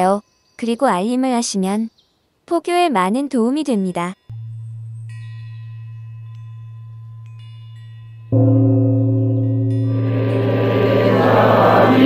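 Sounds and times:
bell-like chimes ringing: 4.1s - 12.0s
steady low drone: 4.3s - 12.0s.

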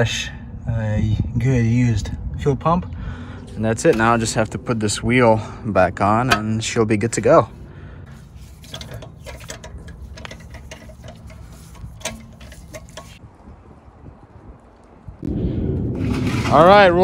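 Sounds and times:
low steady hum: 0.2s - 13.8s
low rumble: 13.2s - 17.0s.

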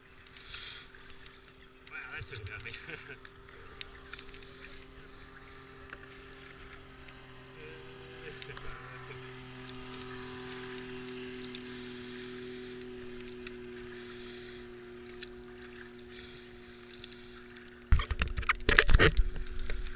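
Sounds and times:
distant powerboat engine droning: 0.0s - 19.9s
splashing and buffeting on camera: 0.0s - 19.9s
water swishing around kayak: 0.0s - 19.9s.

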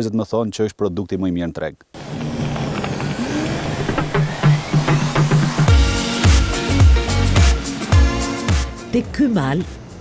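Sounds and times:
tyres on rough track: 2.0s - 5.7s
vehicle engine: 2.0s - 6.2s.

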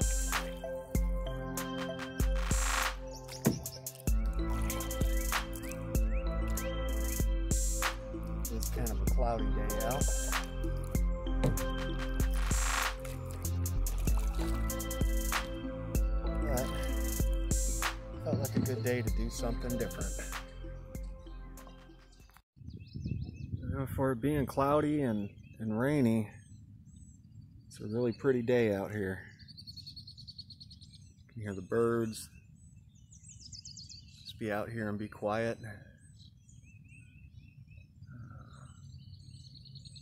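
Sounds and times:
background music: 0.0s - 22.4s
birds chirping: 0.0s - 40.0s
lower bird call: 35.8s - 40.0s.

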